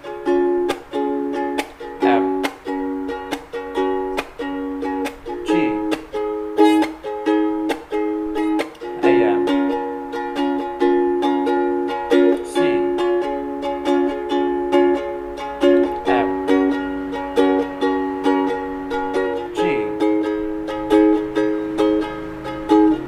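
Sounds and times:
ukulele strumming: 0.0s - 23.0s.

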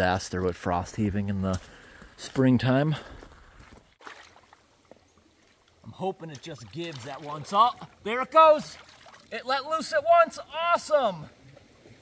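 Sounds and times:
water sloshing and splashing: 3.1s - 9.9s.

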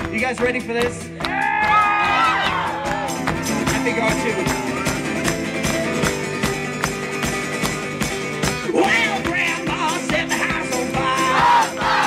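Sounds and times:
steady percussive beat: 0.0s - 12.0s
acoustic guitar strummed hard: 1.0s - 12.0s.

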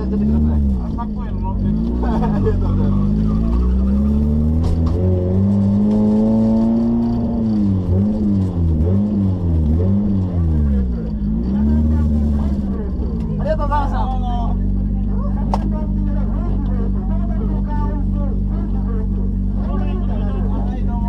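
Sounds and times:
car engine revving and idling: 0.0s - 21.0s.

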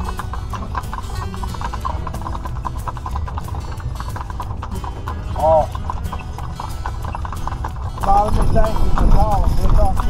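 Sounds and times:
mule hooves clip-clopping on pavement: 0.0s - 10.0s
wagon rolling rumble: 0.0s - 10.0s.

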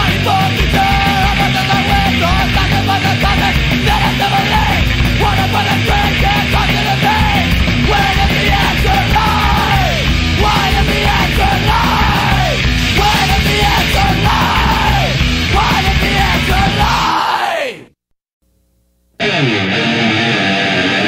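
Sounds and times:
punk rock band playing: 0.0s - 17.4s, 19.2s - 21.0s
person yelling vocals: 0.0s - 17.9s.

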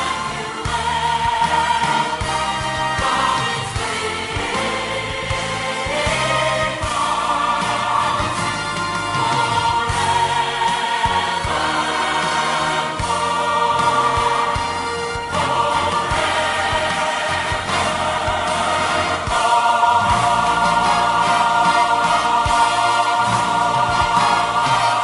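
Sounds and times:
choir singing gospel: 0.0s - 25.0s
instrumental backing with beat: 0.0s - 25.0s.

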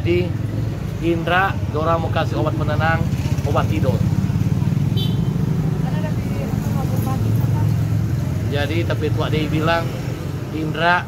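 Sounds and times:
street traffic engine rumble: 0.0s - 11.0s.

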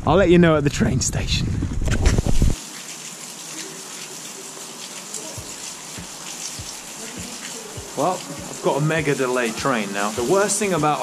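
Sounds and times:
rain hissing on canopy: 2.0s - 11.0s.

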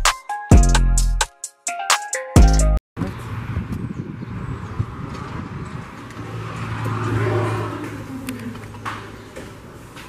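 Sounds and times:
motor vehicle driving past: 3.2s - 9.8s.

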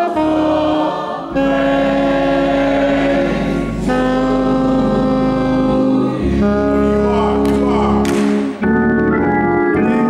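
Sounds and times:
gospel choir singing: 0.0s - 8.6s
organ chord: 0.0s - 10.0s.

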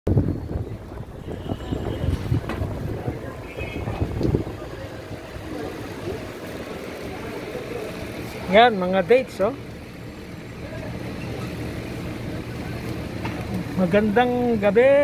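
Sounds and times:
wind on microphone: 0.1s - 5.5s.

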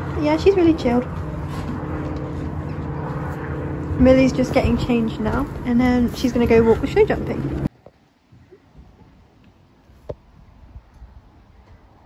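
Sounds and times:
engine droning: 0.0s - 7.7s.

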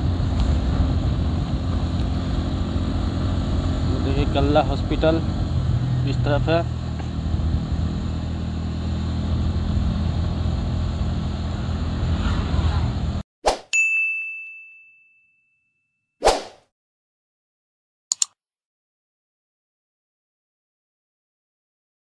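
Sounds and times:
motorcycle engine running: 0.0s - 12.2s
bright ding: 13.7s - 16.0s
short whoosh: 16.2s - 16.6s.

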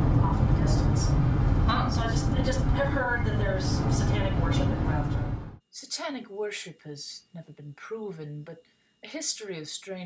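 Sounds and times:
car road and engine rumble: 0.0s - 5.6s
woman talking: 0.0s - 10.0s.

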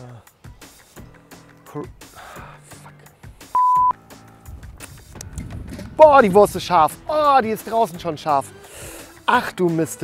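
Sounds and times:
quiet background music: 0.0s - 10.0s
censor bleep: 3.6s - 4.0s.

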